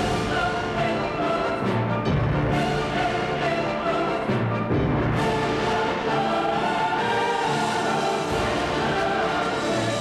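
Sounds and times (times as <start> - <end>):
choir singing held notes: 0.0 - 4.5, 5.1 - 10.0
orchestral trailer music: 0.0 - 10.0.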